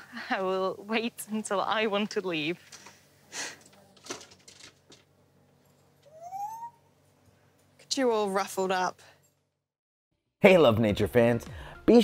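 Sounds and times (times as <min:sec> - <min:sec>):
parrot whistling: 0:06.1 - 0:06.9.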